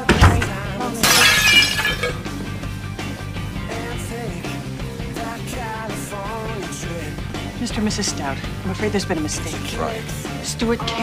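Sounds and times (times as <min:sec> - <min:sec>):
background music: 0:00.0 - 0:11.0
glass breaking: 0:00.1 - 0:02.3.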